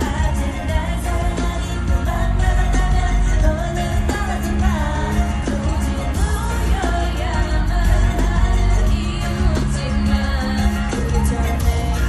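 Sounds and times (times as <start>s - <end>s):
pop backing track with heavy bass: 0.0s - 12.0s
woman singing: 0.0s - 12.0s.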